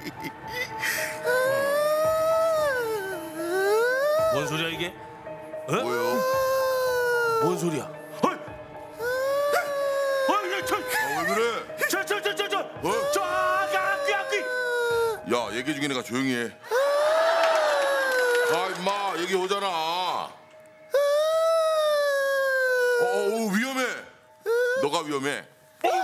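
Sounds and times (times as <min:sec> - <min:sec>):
person wailing: 0:01.2 - 0:04.5, 0:05.7 - 0:07.7, 0:09.0 - 0:11.7, 0:12.9 - 0:15.2
short vocal cries: 0:01.2 - 0:04.6, 0:05.7 - 0:07.9, 0:09.0 - 0:11.8.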